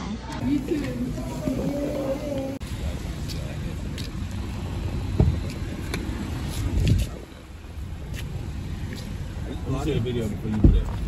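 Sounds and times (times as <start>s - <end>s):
car door thump: 5.1s - 5.4s.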